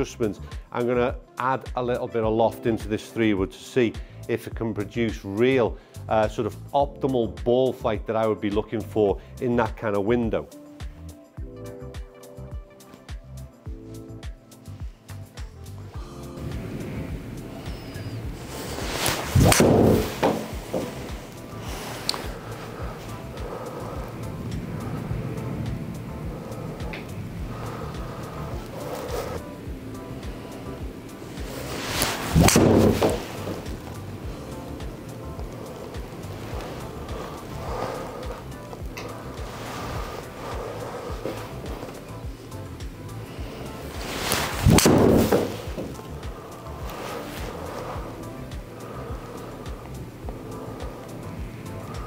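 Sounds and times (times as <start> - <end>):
background music: 0.0 - 52.0
golf club swishing and cracking ball: 13.9 - 52.0
ball hitting simulator screen: 19.4 - 20.9, 32.4 - 33.8, 44.7 - 45.9.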